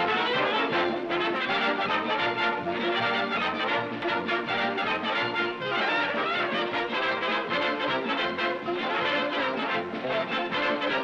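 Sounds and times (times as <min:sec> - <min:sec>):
dance orchestra with brass: 0:00.0 - 0:11.0.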